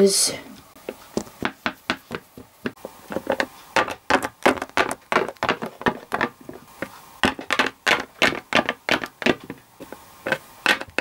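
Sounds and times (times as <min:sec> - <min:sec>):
plastic figures tapping on wooden floor: 0:00.9 - 0:11.0.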